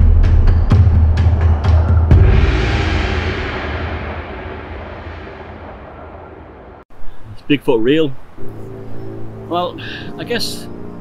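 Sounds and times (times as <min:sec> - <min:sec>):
low rumbling drum boom: 0:00.0 - 0:06.9.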